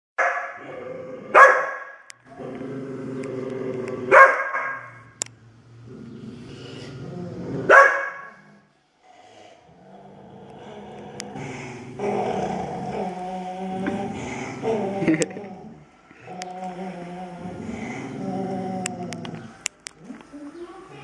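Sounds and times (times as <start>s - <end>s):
dog barking: 0.2s - 0.6s, 1.3s - 2.0s, 4.1s - 5.0s, 7.7s - 8.4s
dogs snarling and growling: 0.6s - 1.6s, 2.3s - 20.3s.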